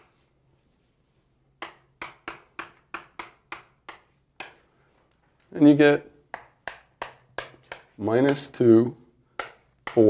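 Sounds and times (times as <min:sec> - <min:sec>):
taps of writing on board: 0:01.6 - 0:04.7, 0:06.3 - 0:08.7, 0:09.3 - 0:10.0.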